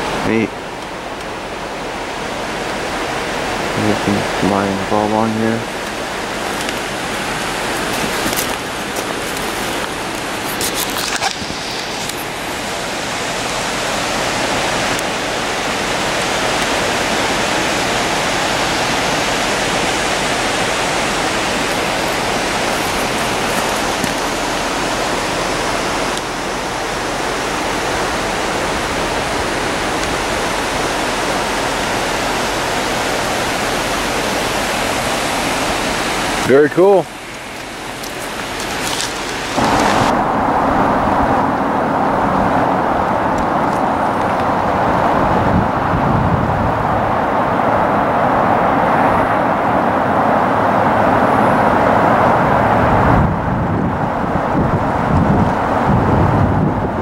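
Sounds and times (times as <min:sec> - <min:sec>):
flowing water rushing: 0:00.0 - 0:57.0.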